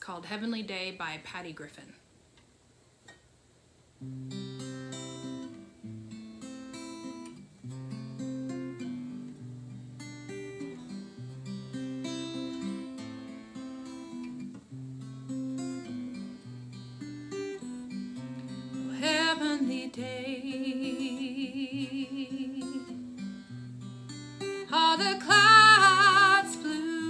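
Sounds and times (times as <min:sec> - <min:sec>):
acoustic guitar playing: 0:04.0 - 0:27.0
woman singing a held note: 0:19.0 - 0:22.9.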